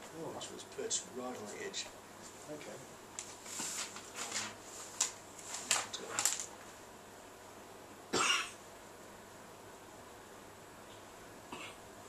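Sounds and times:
person coughing: 0:08.1 - 0:08.6, 0:11.5 - 0:11.8.

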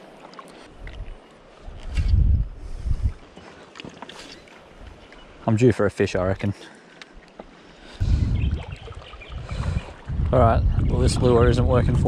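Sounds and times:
wind buffeting microphone: 0:00.8 - 0:03.3, 0:08.0 - 0:12.0.

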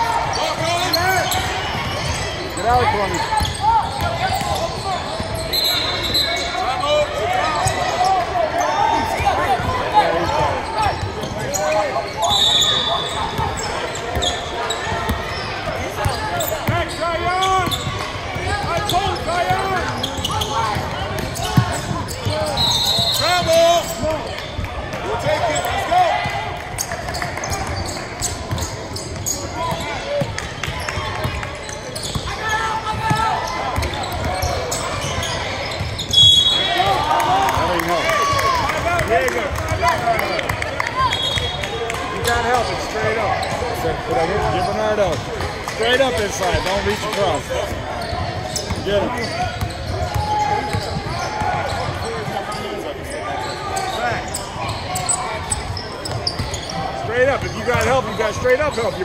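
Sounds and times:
sneakers squeaking: 0:00.0 - 0:59.0
unintelligible voices in a hall: 0:00.0 - 0:59.0.

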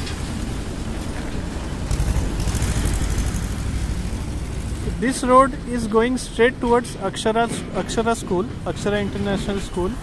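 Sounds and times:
motorcycles passing: 0:00.0 - 0:06.8
low traffic rumble: 0:00.0 - 0:10.0.

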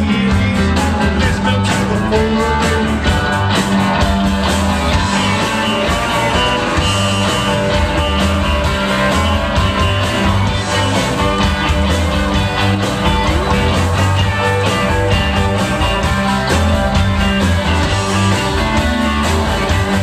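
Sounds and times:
bass guitar: 0:00.0 - 0:20.0
drums: 0:00.0 - 0:20.0
electric guitars: 0:00.0 - 0:20.0.

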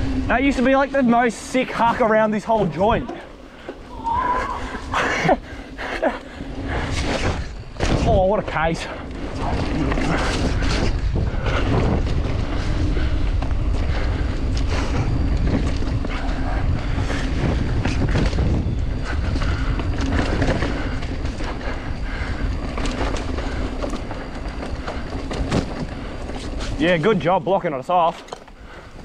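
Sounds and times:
bike clicks and rattles: 0:00.0 - 0:29.0
bike tyre rumble: 0:00.0 - 0:29.0
wind on microphone: 0:09.1 - 0:26.8.

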